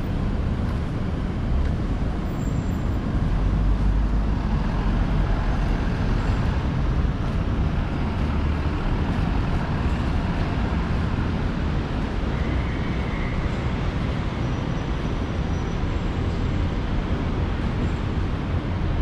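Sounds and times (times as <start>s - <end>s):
cars passing: 0.0s - 19.0s
deep low traffic rumble: 0.0s - 19.0s.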